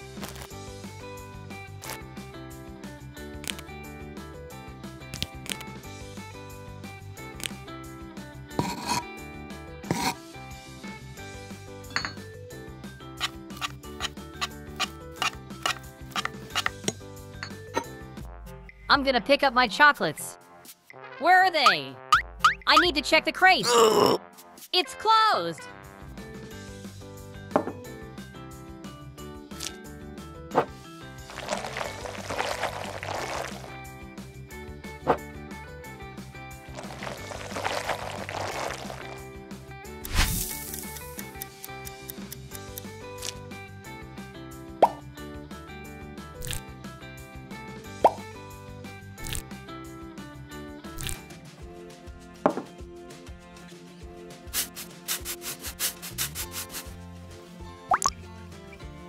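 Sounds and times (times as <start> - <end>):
background music: 0.0 - 59.0
small bowls and tools on wooden counter: 8.6 - 9.1, 9.9 - 10.2, 12.0 - 12.3.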